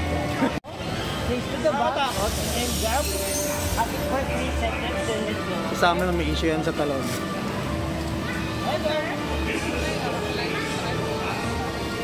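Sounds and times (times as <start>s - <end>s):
children's voices calling: 4.8s - 12.0s.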